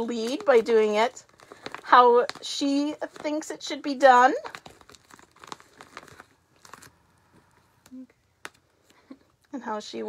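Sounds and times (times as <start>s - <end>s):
duct tape crinkling and tearing: 0.0s - 9.4s.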